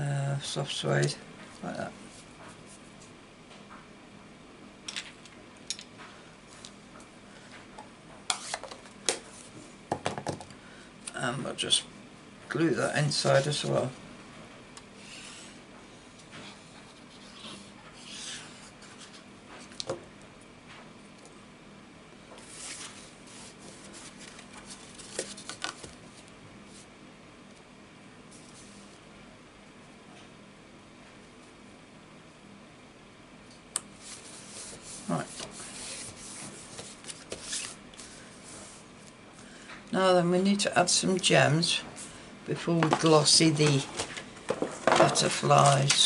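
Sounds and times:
card sliding and rustling: 22.4s - 26.9s, 34.0s - 38.9s.

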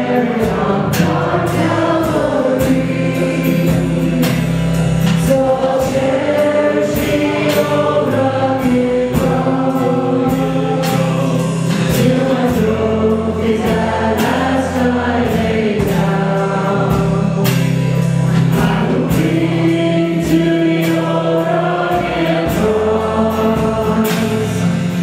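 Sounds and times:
singers holding long notes: 0.0s - 25.0s
steady drum beat: 0.0s - 25.0s.

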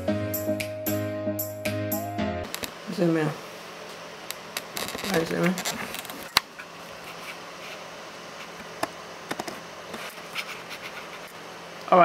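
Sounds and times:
room noise hiss: 2.4s - 12.0s.

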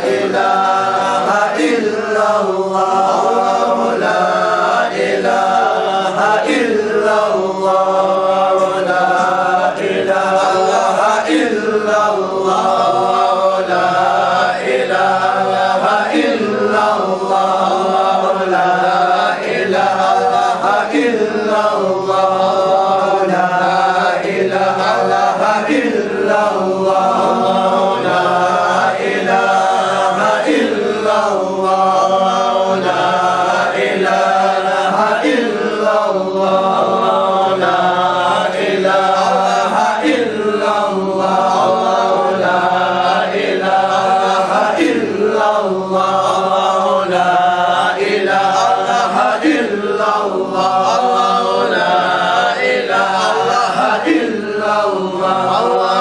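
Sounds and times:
men chanting in unison: 0.0s - 56.0s.

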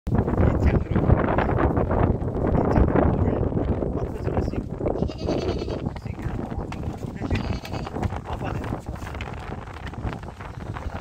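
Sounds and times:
goats bleating: 5.0s - 5.9s, 7.2s - 8.0s.

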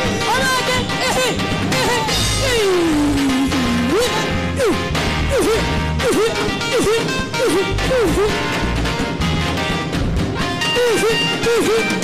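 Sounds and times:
band backing: 0.0s - 12.0s.

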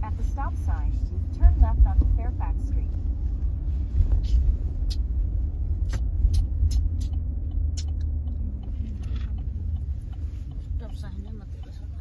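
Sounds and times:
car cabin rumble: 0.0s - 12.0s
sharp clicks: 5.8s - 10.7s.

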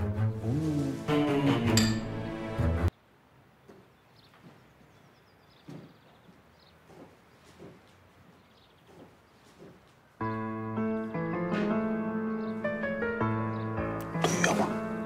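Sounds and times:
background music: 0.0s - 2.9s, 10.2s - 15.0s
footsteps on tiled floor: 5.6s - 10.2s.

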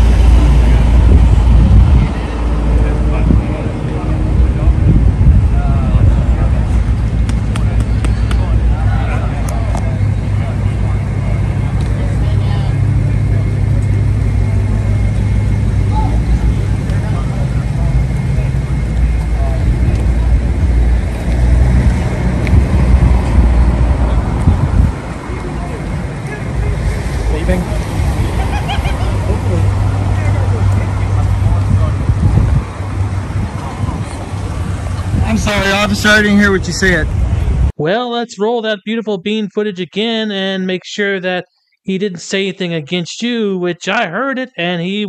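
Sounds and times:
road traffic rumble: 0.0s - 37.8s.

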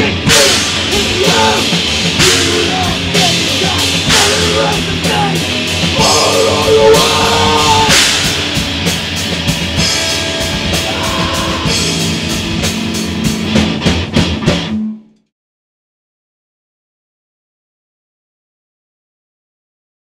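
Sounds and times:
metal band playing live: 0.0s - 15.1s.

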